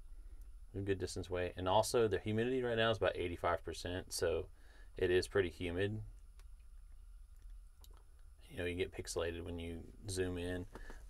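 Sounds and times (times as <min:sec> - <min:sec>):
faint small clicks: 0:06.1 - 0:08.3.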